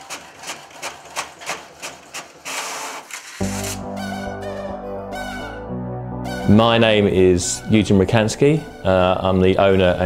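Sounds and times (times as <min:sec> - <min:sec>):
printer rushing sound: 0:00.0 - 0:03.8
synthesizer music: 0:03.4 - 0:10.0.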